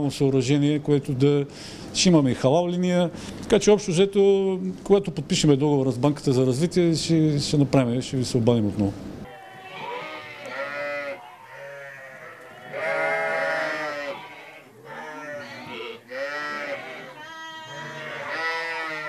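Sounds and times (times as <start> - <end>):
sheep and lambs bleating: 9.3 - 19.0.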